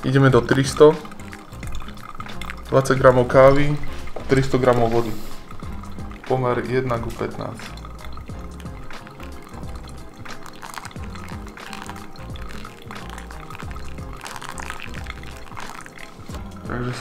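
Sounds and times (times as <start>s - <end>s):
background music: 0.0s - 17.0s
water pouring from a kettle: 0.0s - 17.0s.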